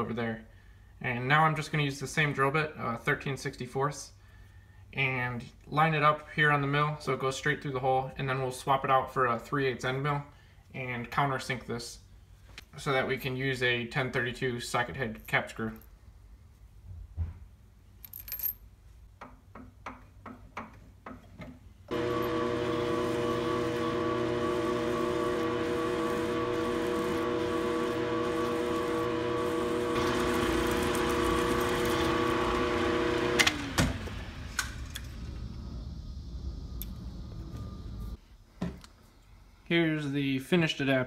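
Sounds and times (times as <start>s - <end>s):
end mill cutting metal: 21.9s - 38.2s
milling machine humming whine: 21.9s - 38.2s
spindle winding down: 21.9s - 38.2s.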